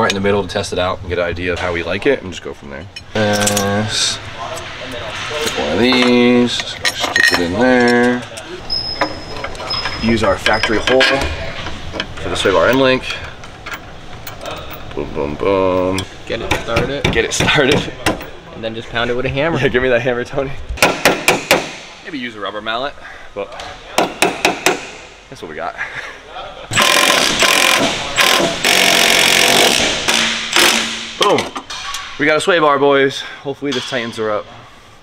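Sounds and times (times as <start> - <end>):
hammer striking metal: 20.8 - 21.9, 24.0 - 25.1.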